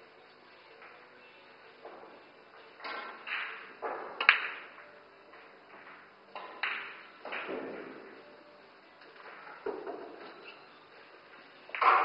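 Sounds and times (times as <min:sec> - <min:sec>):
pool cue striking ball: 0:02.8 - 0:04.8, 0:06.4 - 0:08.2, 0:11.7 - 0:12.0
pool balls clicking together: 0:02.8 - 0:08.2, 0:11.3 - 0:12.0.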